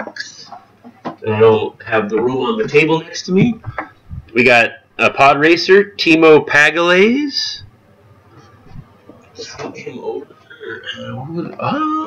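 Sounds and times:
faint scattered small sounds: 0.0 - 5.8.

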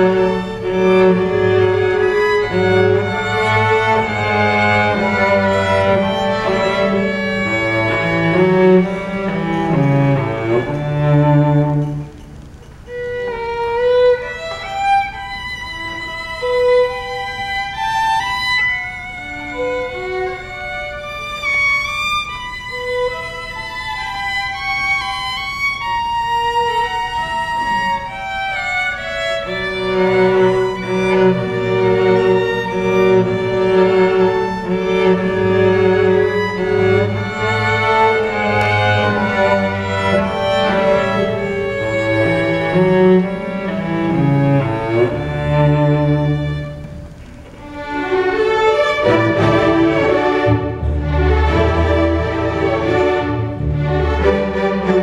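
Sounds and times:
string orchestra playing: 0.0 - 55.0.

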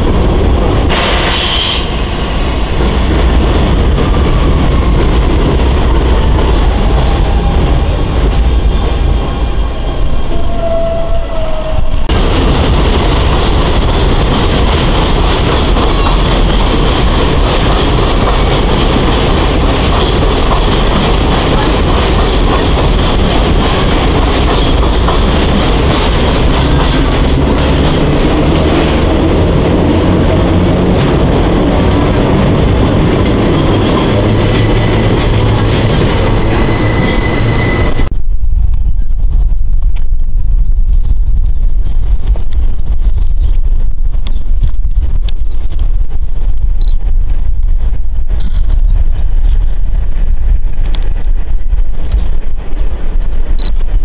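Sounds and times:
train wheels on rails: 0.0 - 38.2
loud hiss: 0.9 - 2.9.

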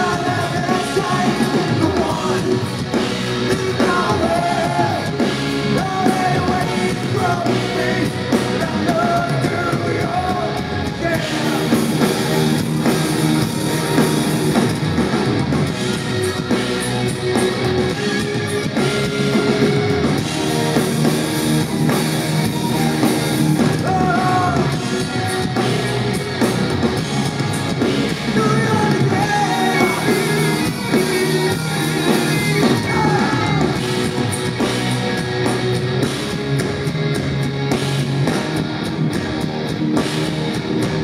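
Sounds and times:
man singing: 0.0 - 12.1, 23.7 - 25.6, 28.3 - 33.8
rock band playing: 0.0 - 41.0.

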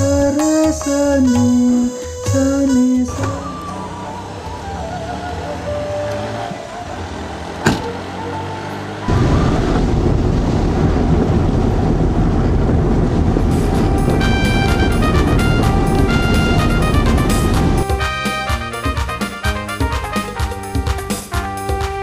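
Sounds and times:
rhythmic background music: 0.0 - 6.0, 13.5 - 22.0
car road and engine noise: 0.0 - 22.0.

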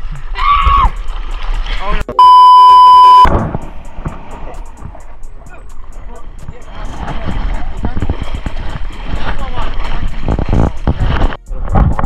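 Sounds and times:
ticking beat: 0.9 - 12.0
steady test tone beep: 2.1 - 3.4
background music: 3.3 - 12.0.

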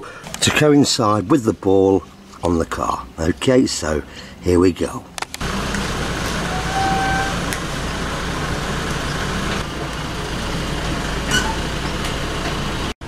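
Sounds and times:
car engine running: 5.4 - 12.9.

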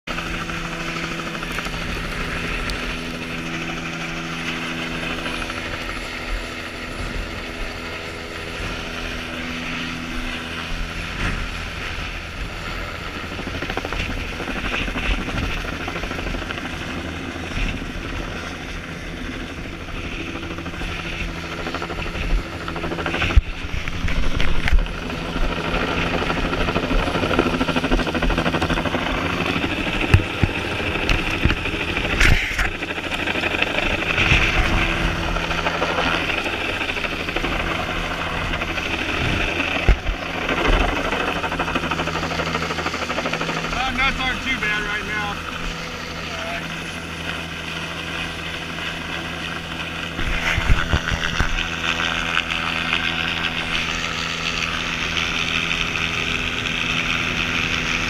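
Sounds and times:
helicopter flying overhead: 0.0 - 58.0.

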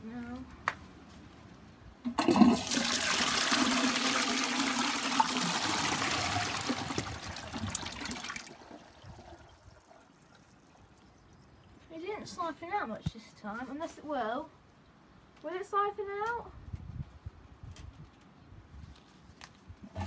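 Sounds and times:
toilet flushing: 2.1 - 10.8
water trickling: 2.1 - 12.3.

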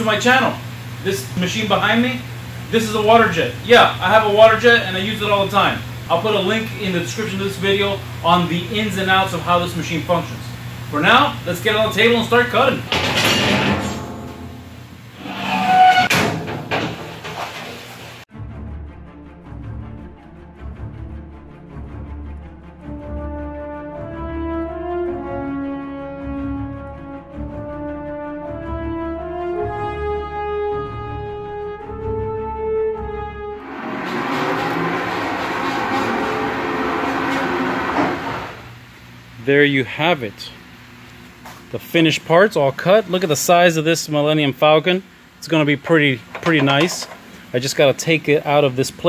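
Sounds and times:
metallic ring: 12.9 - 16.4
metal sheet scraping: 12.9 - 18.2, 33.6 - 38.7
orchestral music with brass: 18.3 - 38.6.

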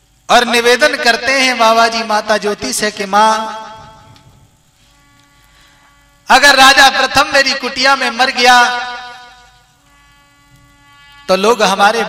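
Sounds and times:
person speaking: 0.3 - 4.0, 6.3 - 9.5, 11.2 - 12.0.

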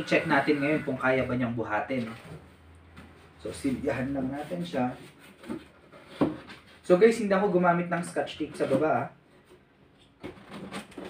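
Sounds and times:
cardboard box scraping and knocking: 3.9 - 6.8.

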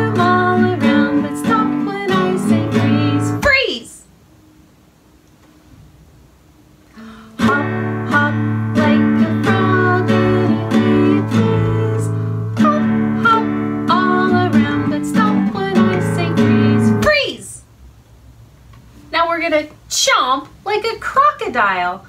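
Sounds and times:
nylon-string guitar strumming: 0.0 - 3.6, 7.4 - 17.2
woman singing: 0.0 - 4.1, 7.0 - 17.6.

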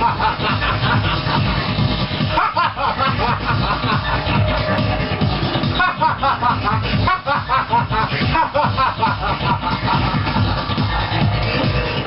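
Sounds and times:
electronic house music: 0.0 - 12.0
steady bass beat: 0.0 - 12.0
pitch-bending synth notes: 1.2 - 12.0.

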